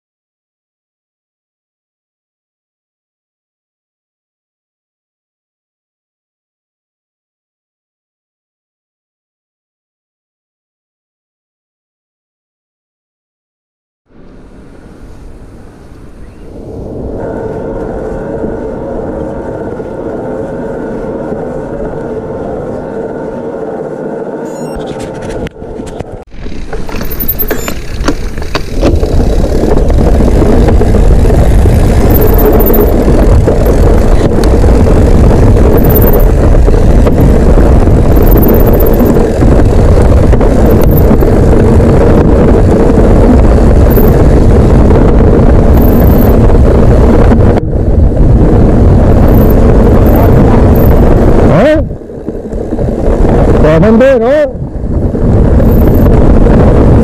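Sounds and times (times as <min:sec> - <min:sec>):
steady hum with held tones: 0:14.1 - 0:26.2, 0:26.9 - 0:57.0
wind buffeting microphone: 0:24.6 - 0:57.0
bike tyres rumbling on dirt trail: 0:24.9 - 0:53.7, 0:54.6 - 0:57.0.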